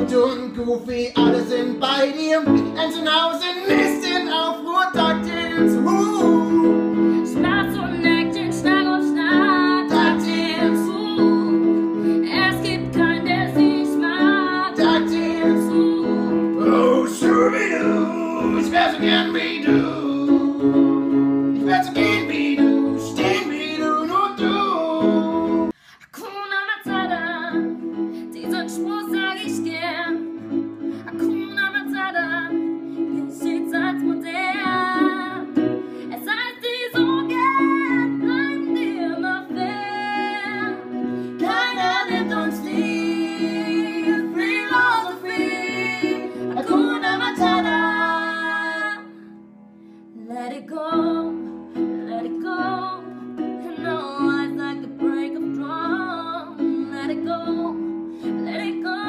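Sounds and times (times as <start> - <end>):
keyboard piano chords: 0.0 - 25.8, 26.9 - 59.0
woman singing: 3.6 - 20.5, 21.6 - 30.3, 31.0 - 49.3, 50.2 - 59.0.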